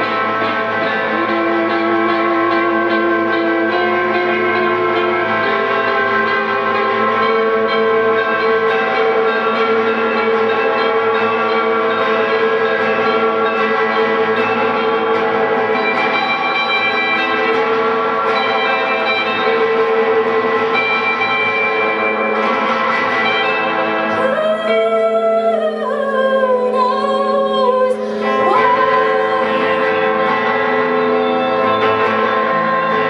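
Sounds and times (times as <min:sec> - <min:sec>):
electric guitars droning: 0:00.0 - 0:33.0.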